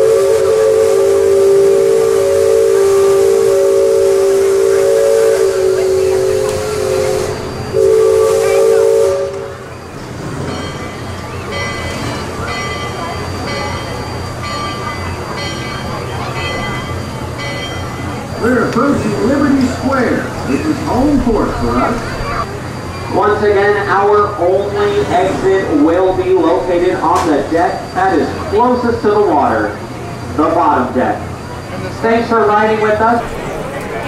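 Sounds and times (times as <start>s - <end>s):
steam whistle chord: 0.0s - 9.7s
steam hissing: 0.0s - 34.0s.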